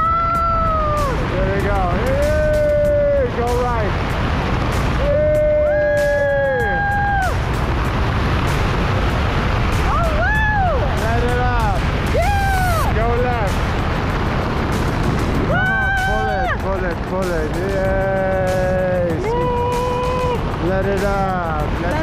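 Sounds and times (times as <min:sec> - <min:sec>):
wind rush on microphone: 0:00.0 - 0:22.0.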